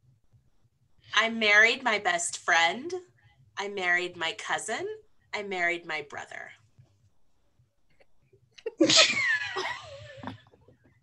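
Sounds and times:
woman laughing loudly: 0:08.6 - 0:10.5.

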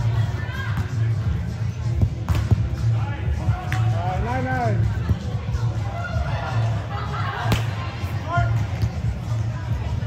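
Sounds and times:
background music with deep beat: 0:00.6 - 0:05.8.

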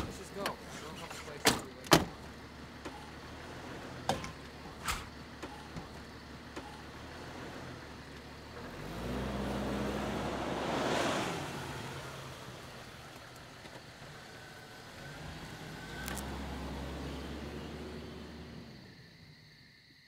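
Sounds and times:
engine rising: 0:02.2 - 0:19.7
truck driving past: 0:02.3 - 0:19.4.

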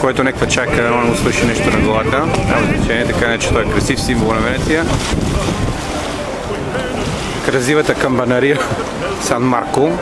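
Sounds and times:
wind buffeting microphone: 0:00.0 - 0:09.2.

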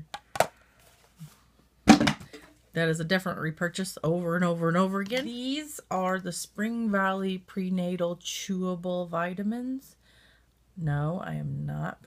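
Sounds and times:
plastic knocking on hard surface: 0:00.1 - 0:00.5, 0:01.9 - 0:02.4.

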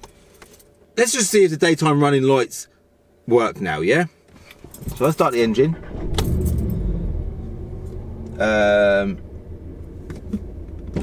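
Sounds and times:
car engine starting: 0:04.8 - 0:11.0.

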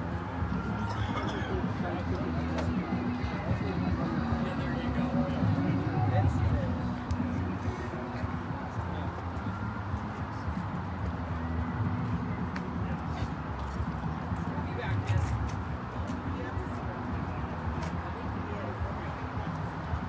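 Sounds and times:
people talking: 0:00.0 - 0:20.0.

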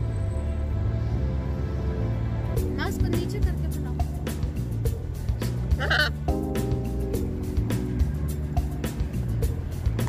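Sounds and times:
background music with steady beat: 0:00.0 - 0:10.0
macaw squawk: 0:05.8 - 0:06.2.

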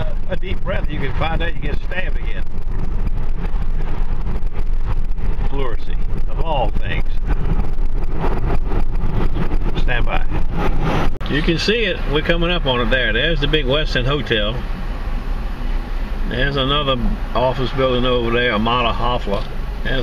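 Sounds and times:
car cabin engine and road rumble: 0:00.0 - 0:20.0.

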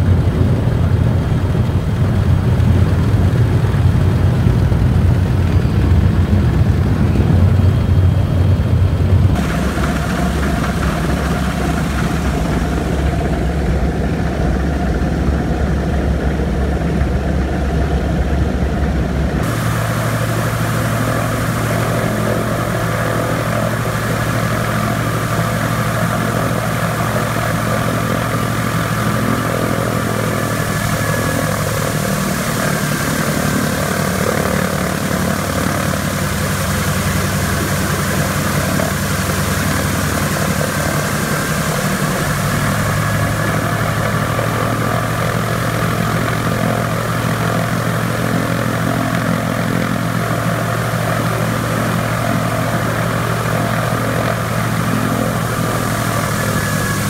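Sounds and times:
radial aircraft engines droning: 0:00.0 - 0:57.0.

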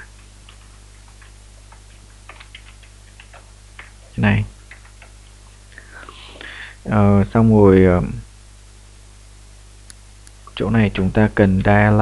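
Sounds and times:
keyboard typing: 0:00.0 - 0:05.3.

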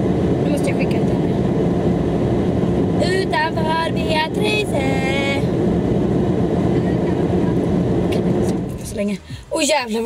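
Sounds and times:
loud low vehicle noise: 0:00.0 - 0:09.6.

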